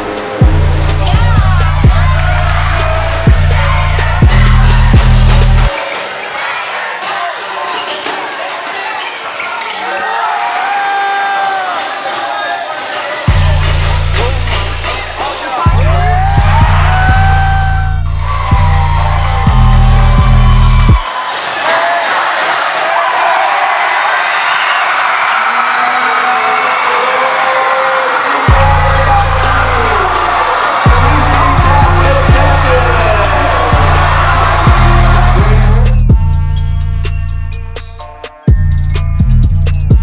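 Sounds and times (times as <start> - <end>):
crowd voices and shouts: 0.0 - 40.0
basketball play on court: 0.5 - 36.3.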